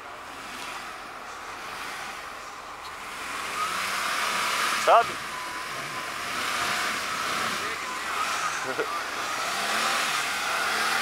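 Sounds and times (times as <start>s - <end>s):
car engine running: 0.0s - 11.0s
tyres working through snow: 0.0s - 11.0s.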